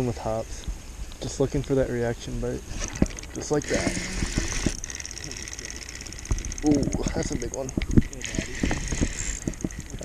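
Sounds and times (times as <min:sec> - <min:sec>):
fishing reel ticking: 0:02.7 - 0:10.0.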